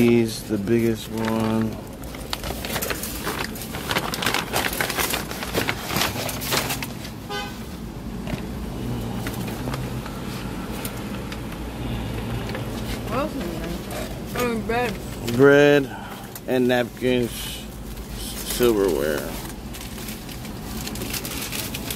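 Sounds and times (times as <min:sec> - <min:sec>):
paper bag and plastic rustling: 0:00.0 - 0:07.2, 0:08.4 - 0:21.9
car engine humming: 0:00.0 - 0:21.9.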